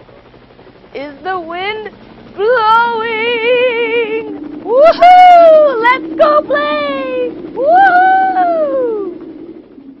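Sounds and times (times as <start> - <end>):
low hum: 0.0 - 10.0
person calling woohoo: 4.1 - 9.2.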